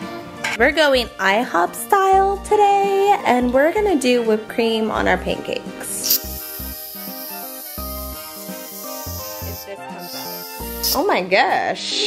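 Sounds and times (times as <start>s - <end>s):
background music of held notes: 0.0s - 12.0s
aerosol can spraying: 6.0s - 11.1s.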